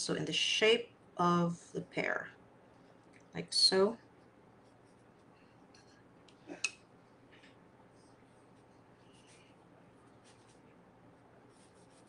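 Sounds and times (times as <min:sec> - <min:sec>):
low room hum: 0:00.0 - 0:12.0
brush scratching on paper: 0:04.2 - 0:05.5, 0:07.9 - 0:10.8, 0:11.4 - 0:12.0.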